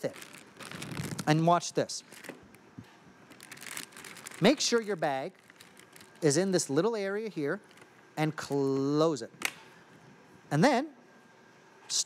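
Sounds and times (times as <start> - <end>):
plastic bag crinkling: 0.0 - 2.6, 3.2 - 8.0.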